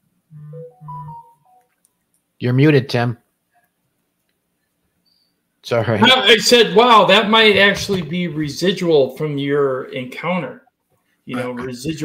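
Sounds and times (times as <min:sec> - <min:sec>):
electronic jingle: 0:00.3 - 0:01.6, 0:06.0 - 0:06.4.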